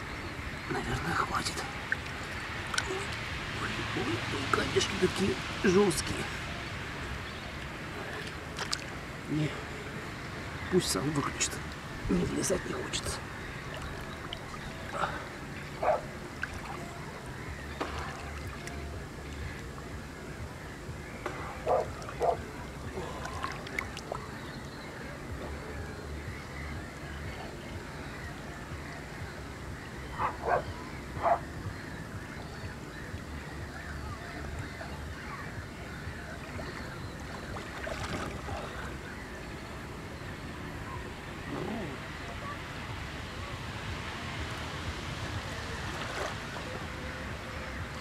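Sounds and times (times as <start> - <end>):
small waves lapping on stones: 45.6 - 46.7.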